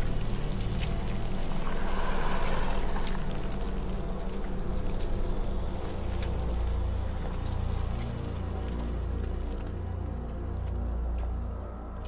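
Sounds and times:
low drone of deep tones: 0:00.0 - 0:12.0.

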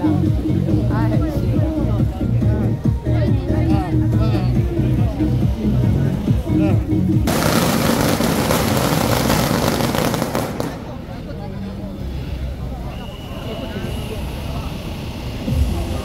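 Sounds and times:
crowd voices: 0:00.0 - 0:16.0
firecrackers crackling: 0:07.3 - 0:11.4.

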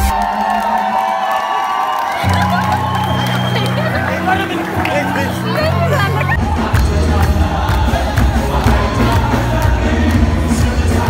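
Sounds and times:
crowd cheering and shouting: 0:00.0 - 0:11.0
dance music: 0:00.0 - 0:11.0.

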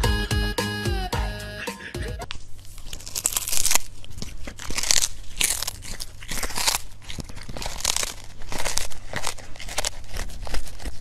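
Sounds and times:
cat chewing with wet crunches: 0:02.4 - 0:11.0.

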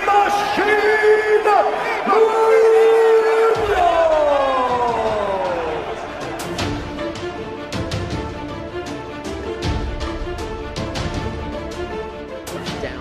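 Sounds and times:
crowd noise: 0:00.0 - 0:08.1.

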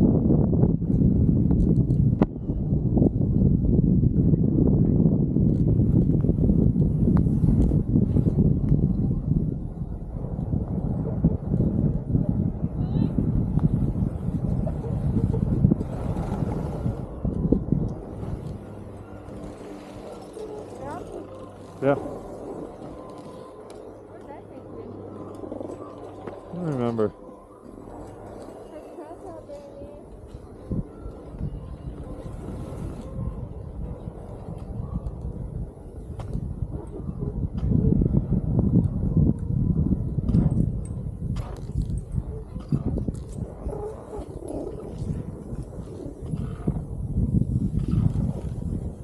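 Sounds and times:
wind buffeting microphone: 0:00.0 - 0:49.0.

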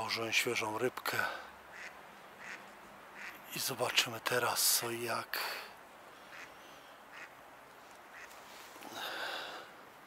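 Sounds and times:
duck quacking: 0:01.7 - 0:03.4, 0:06.3 - 0:06.5, 0:07.1 - 0:07.3, 0:08.1 - 0:08.4.

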